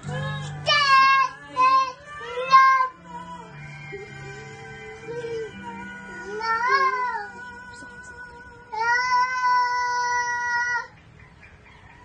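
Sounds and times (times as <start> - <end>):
toddler singing: 0.6 - 3.3, 4.0 - 11.0.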